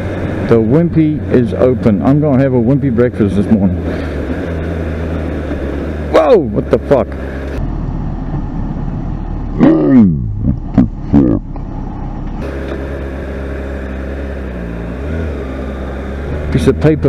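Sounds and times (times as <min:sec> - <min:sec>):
motorcycle engine running: 0:00.0 - 0:09.8, 0:10.4 - 0:17.0.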